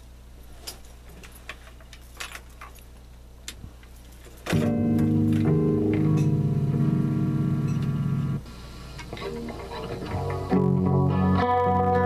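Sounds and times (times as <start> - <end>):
guitar handling clicks and taps: 4.3 - 7.0, 7.6 - 8.0, 9.0 - 12.0
electric guitar chord: 4.5 - 8.4, 9.2 - 12.0
amplifier hum: 4.5 - 12.0.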